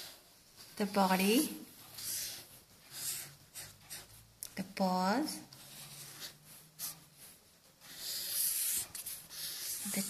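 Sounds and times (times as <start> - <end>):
felt-tip marker drawing on paper: 1.1 - 4.2, 5.4 - 10.0.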